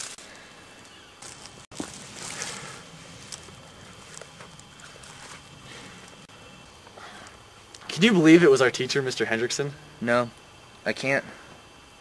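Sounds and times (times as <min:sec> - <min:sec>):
rustling in dry leaves: 0:00.0 - 0:06.3.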